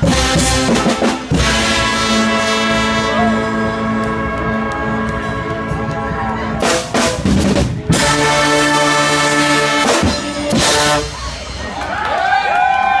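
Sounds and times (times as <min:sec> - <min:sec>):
brass band playing: 0:00.0 - 0:11.7
people calling out: 0:02.8 - 0:06.8.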